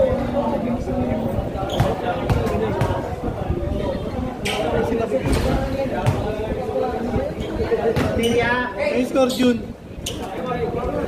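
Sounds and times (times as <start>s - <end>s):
people talking: 0.0s - 11.0s
basketball bouncing on concrete: 5.3s - 6.4s, 7.8s - 8.4s.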